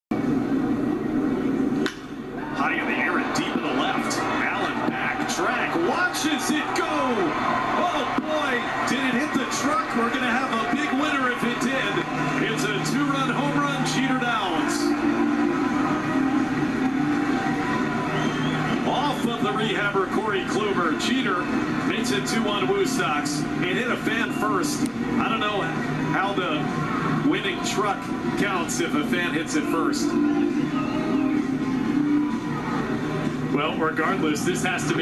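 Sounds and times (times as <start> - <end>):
bat cracking: 1.8 - 2.2
crowd cheering: 1.9 - 33.4
announcer speaking: 2.5 - 14.9, 18.8 - 26.6.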